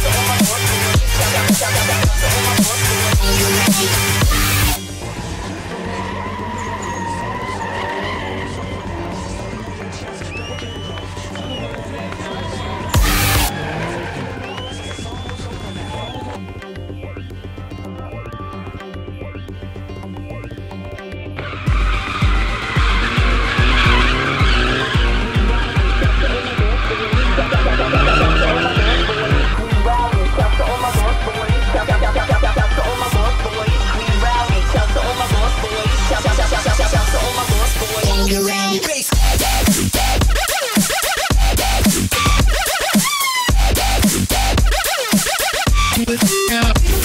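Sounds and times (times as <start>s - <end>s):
music with heavy bass beat: 0.0s - 5.9s, 9.6s - 47.0s
car engines running: 0.0s - 18.3s, 19.2s - 47.0s
car tyres squealing: 3.6s - 16.4s, 21.4s - 38.2s.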